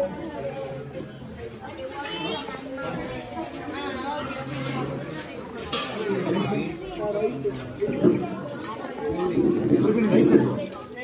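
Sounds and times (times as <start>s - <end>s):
voices talking and chattering: 0.0s - 11.0s.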